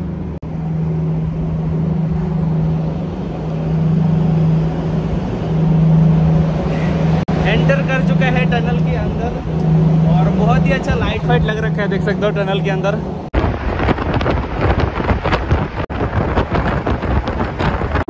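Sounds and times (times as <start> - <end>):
low drone: 0.0 - 18.0
vehicle engine and road noise: 0.0 - 18.0.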